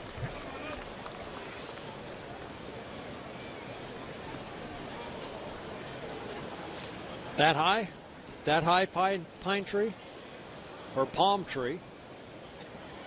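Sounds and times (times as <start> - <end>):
murmur of crowd talking: 0.0 - 13.0.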